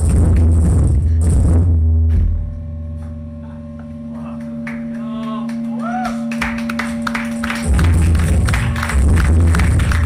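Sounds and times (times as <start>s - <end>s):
droning held notes: 0.8s - 10.0s.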